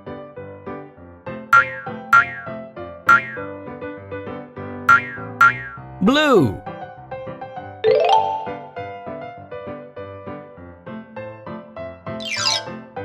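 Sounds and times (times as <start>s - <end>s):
cartoon background music: 1.4s - 3.7s, 4.8s - 6.7s, 7.5s - 9.4s, 11.6s - 13.0s
rising and falling boing: 1.6s - 2.5s, 3.1s - 3.5s, 4.9s - 5.9s.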